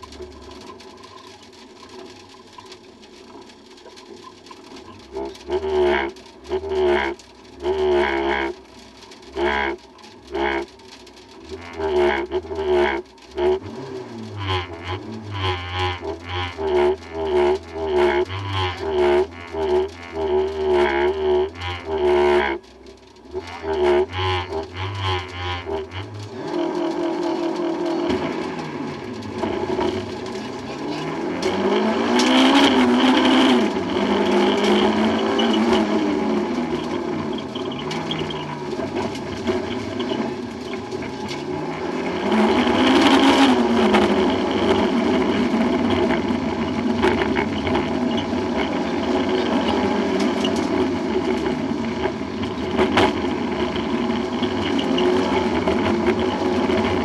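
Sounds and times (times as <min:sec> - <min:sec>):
car engine revving in cabin: 0:04.7 - 0:57.0.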